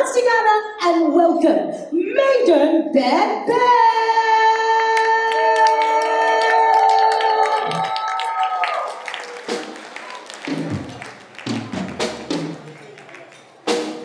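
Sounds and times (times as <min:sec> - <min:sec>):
hand claps: 0:05.3 - 0:14.0
drum hits: 0:09.4 - 0:12.8.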